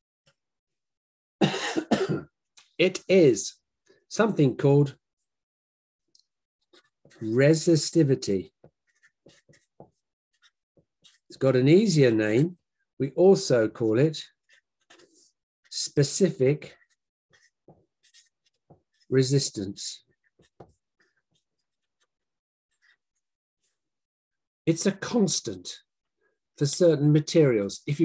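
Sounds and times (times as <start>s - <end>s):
marker pen scratching on paper: 6.6s - 12.8s, 14.2s - 23.9s.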